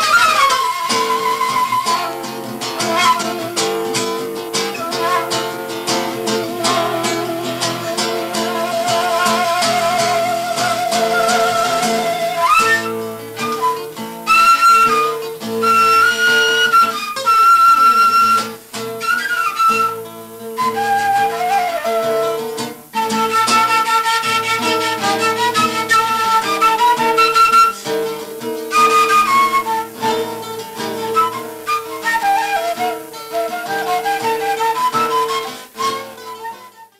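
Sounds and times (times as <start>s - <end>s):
acoustic guitar accompaniment: 0.0s - 36.9s
wooden flute melody: 0.0s - 36.9s.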